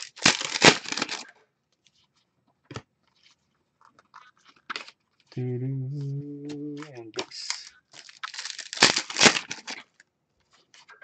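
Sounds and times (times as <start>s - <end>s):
foil pack tearing open: 0.0s - 1.3s, 7.2s - 10.0s
cards clicking and rustling: 0.0s - 5.4s, 6.5s - 11.0s
man humming a note: 5.4s - 7.2s.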